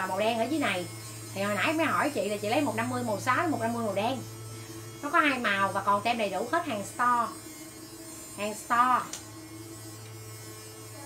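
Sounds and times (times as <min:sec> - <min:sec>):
faint higher electrical tone: 0:00.0 - 0:11.0.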